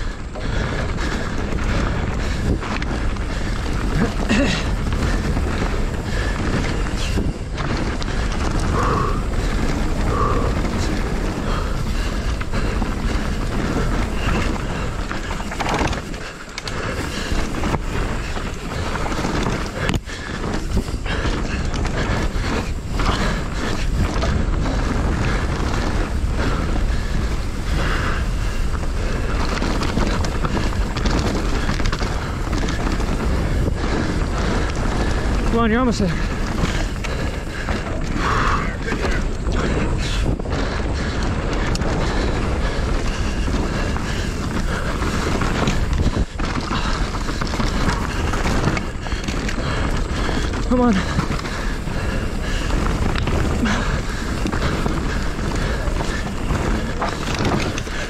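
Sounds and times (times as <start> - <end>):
bike knocks and rattles: 0.0 - 58.0
wind and tyre noise: 0.0 - 58.0.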